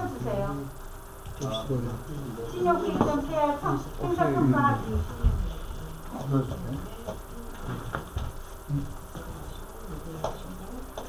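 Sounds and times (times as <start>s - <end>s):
faint steady buzz: 0.0s - 11.0s.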